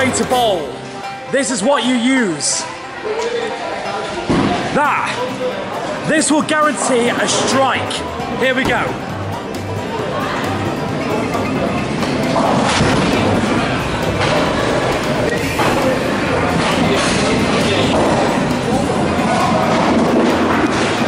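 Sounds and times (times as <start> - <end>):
bowling alley rumble and clatter: 8.1 - 21.0.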